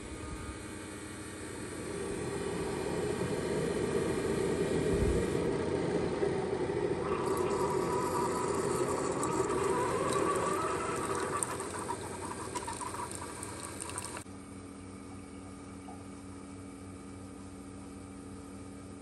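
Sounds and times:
coffee maker pump hum: 0.0s - 19.0s
coffee streaming into a mug: 5.4s - 14.2s.

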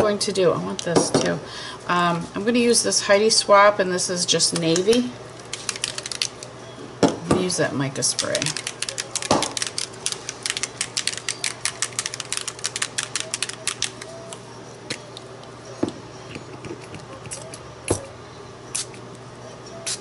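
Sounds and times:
spray bottle shaken rattling: 4.6s - 6.5s, 8.1s - 14.1s.

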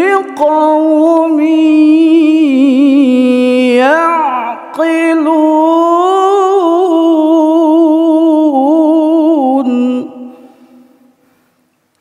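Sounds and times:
person reciting melodically: 0.0s - 11.1s.

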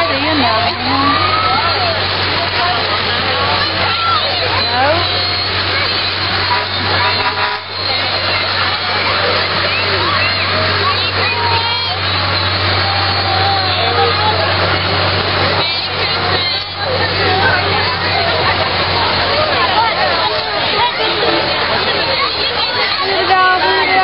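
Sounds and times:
crowd chattering: 0.0s - 24.0s
low hum of vehicle engines: 0.0s - 24.0s.

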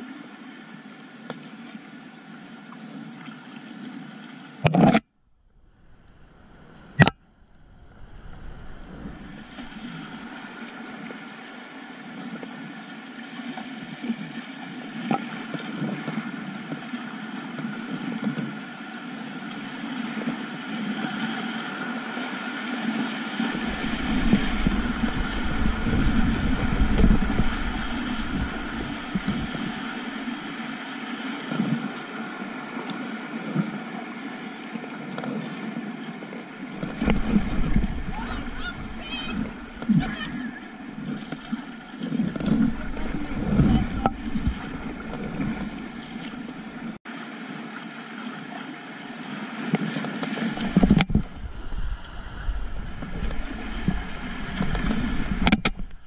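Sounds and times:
low rumble of rapids: 5.2s - 15.0s, 15.9s - 35.0s, 35.7s - 49.7s, 50.3s - 56.0s
river water rushing and splashing: 5.6s - 56.0s.

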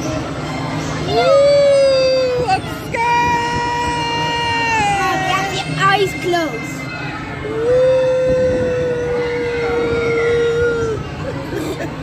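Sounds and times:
busy crowd bustle: 0.0s - 12.0s.

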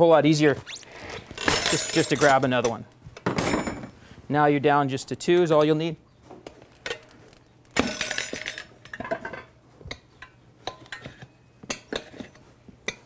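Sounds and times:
metal tire spoons clinking on rim: 1.4s - 2.8s, 7.8s - 8.7s.

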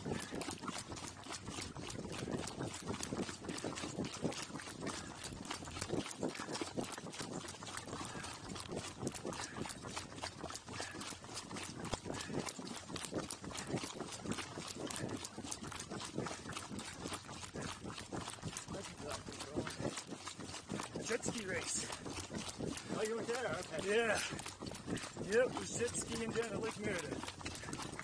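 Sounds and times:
hooves clip-clopping on road: 0.0s - 28.0s.

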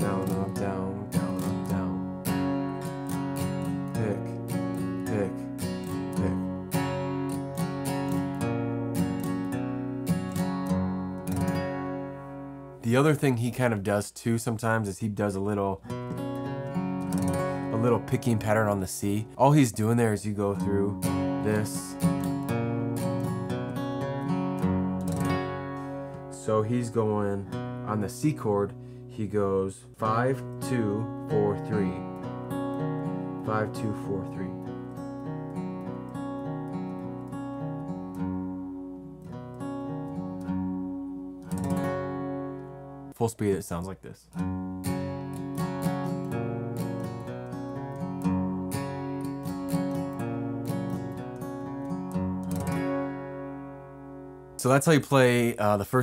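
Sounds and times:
acoustic guitar picking: 0.0s - 56.0s.

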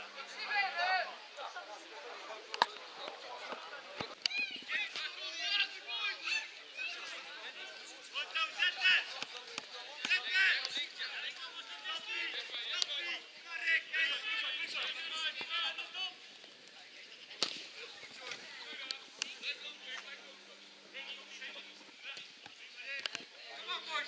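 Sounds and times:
voices shouting and calling: 0.0s - 24.0s.

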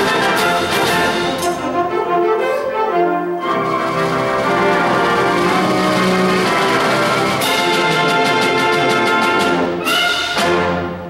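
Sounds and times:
wind band playing chords: 0.0s - 11.0s.

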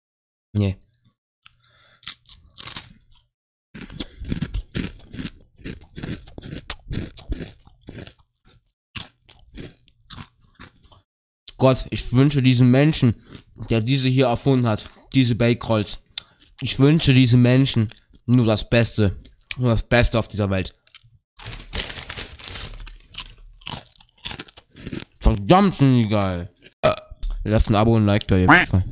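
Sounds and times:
person crunching dry bread chips: 1.5s - 11.0s, 13.2s - 13.7s, 20.7s - 25.5s.

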